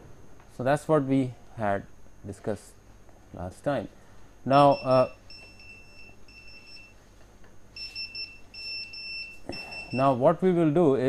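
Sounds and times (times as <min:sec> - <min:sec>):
high-pitched electronic beeps: 0:04.5 - 0:06.9, 0:07.8 - 0:10.2.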